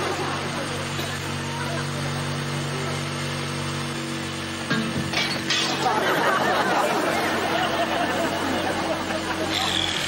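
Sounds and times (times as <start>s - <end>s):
electric drill boring through plaster: 9.5s - 10.0s.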